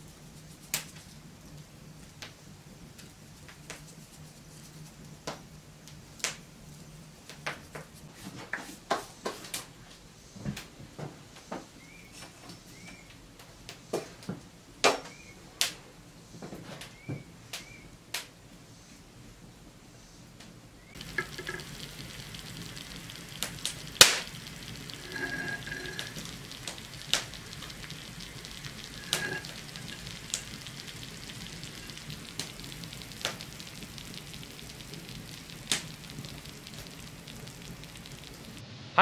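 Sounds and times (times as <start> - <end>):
sugar sizzling and crackling: 20.8 - 38.6.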